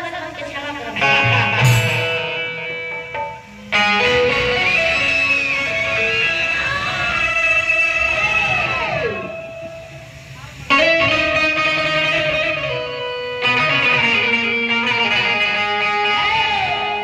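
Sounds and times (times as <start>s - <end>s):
instrumental music through a pa: 0.9s - 17.0s.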